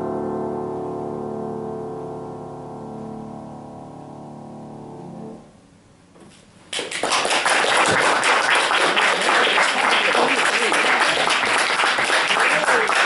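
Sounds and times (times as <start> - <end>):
audience applause: 6.7 - 13.0.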